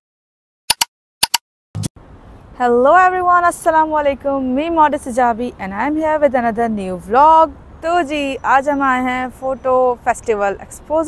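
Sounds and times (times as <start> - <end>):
click sound effects: 0.7 - 1.9.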